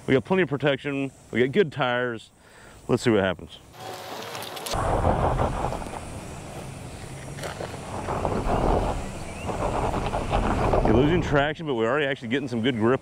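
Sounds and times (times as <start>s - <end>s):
pickup engine under light throttle: 4.8s - 11.6s
wind buffeting microphone: 4.8s - 11.8s.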